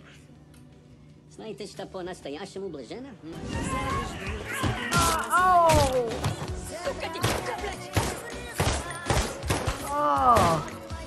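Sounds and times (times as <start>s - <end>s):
music: 3.3s - 11.0s
man laughing loudly: 6.8s - 7.9s.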